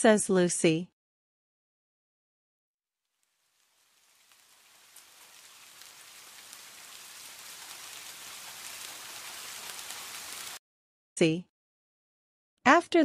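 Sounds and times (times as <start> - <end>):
steady rain falling: 3.0 - 10.6.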